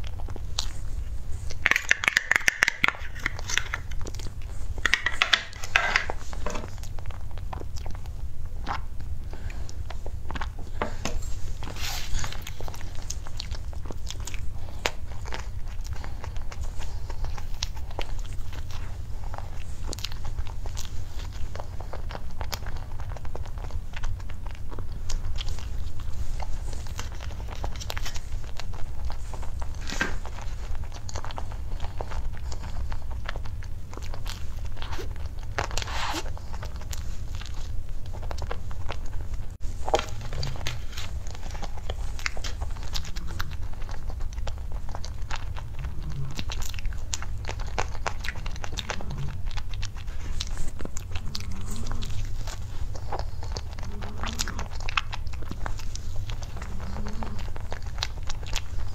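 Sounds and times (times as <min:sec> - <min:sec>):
person chewing pastry: 0:00.0 - 0:58.9
steady low hum: 0:00.0 - 0:58.9.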